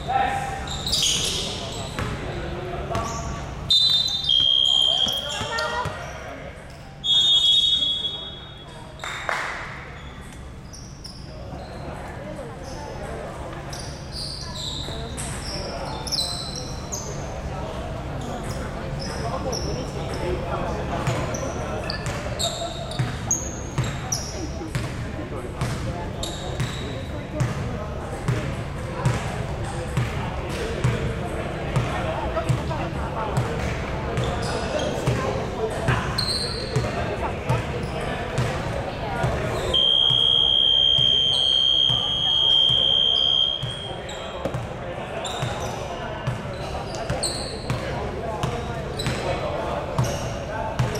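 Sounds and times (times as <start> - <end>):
sneakers squeaking: 0.0 - 50.9.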